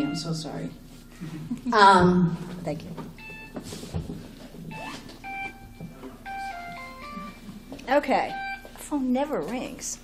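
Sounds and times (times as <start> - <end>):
phone ringtone beeping: 3.2 - 3.6, 4.7 - 8.7.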